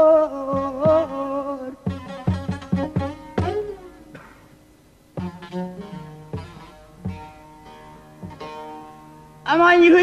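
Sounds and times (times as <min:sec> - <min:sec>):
plucked lute notes: 0:00.0 - 0:10.0.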